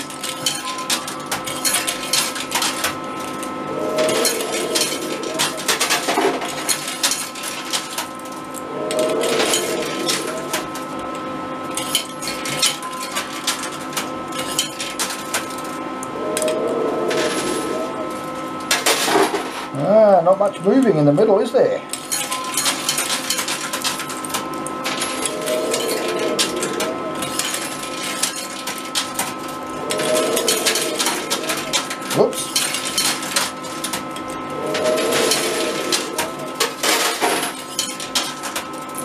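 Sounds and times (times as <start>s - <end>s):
coins clinking: 0.0s - 8.1s, 22.0s - 39.0s
electronic hum with tones: 0.0s - 19.9s, 21.9s - 39.0s.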